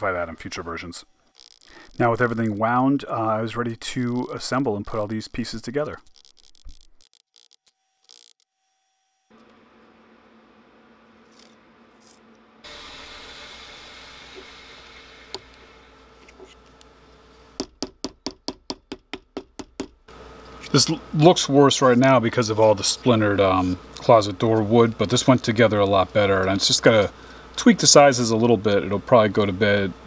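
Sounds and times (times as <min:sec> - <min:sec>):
small hammer tapping: 0:17.6 - 0:20.0.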